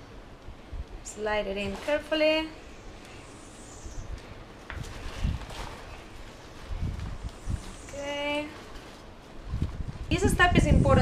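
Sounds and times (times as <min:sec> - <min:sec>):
fabric rustling and handling: 0:01.6 - 0:02.4, 0:04.4 - 0:10.2.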